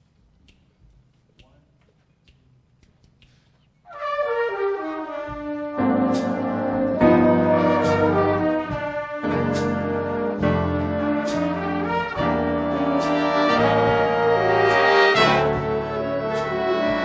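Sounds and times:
big band brass chords: 3.9s - 17.0s.

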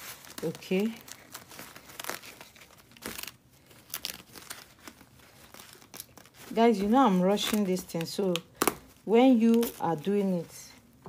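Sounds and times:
fabric rustling and crinkling: 0.0s - 11.0s.

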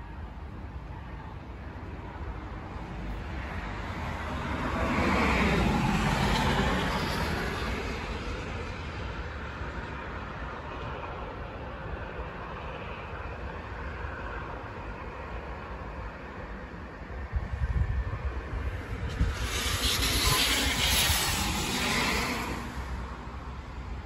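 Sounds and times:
vehicle passing: 18.5s - 23.9s.

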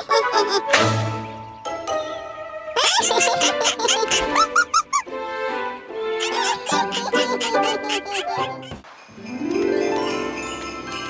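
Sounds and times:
playful cartoon music: 0.0s - 11.0s
squeaky comic sound effects: 6.2s - 8.8s.

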